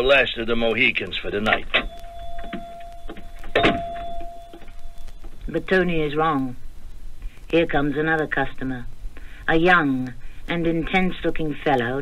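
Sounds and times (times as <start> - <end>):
shop door entry buzzer: 1.8 - 5.0.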